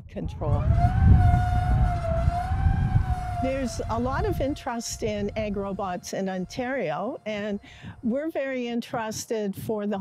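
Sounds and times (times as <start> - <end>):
robot motor whine: 0.6 - 7.7
wheels rumbling over soil: 1.6 - 7.7.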